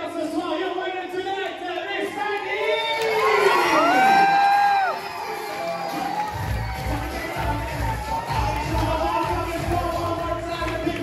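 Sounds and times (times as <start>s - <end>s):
audience cheering and shouting: 1.8s - 11.0s
long high shout: 2.6s - 5.1s.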